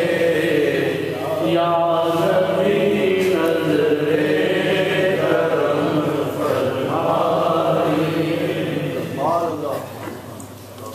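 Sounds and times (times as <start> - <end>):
men chanting devotional poem: 0.0 - 10.0.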